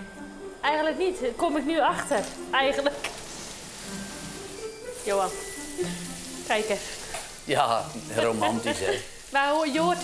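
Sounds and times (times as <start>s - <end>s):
fireplace crackling hiss: 0.0s - 10.0s
soft background music: 0.0s - 10.0s.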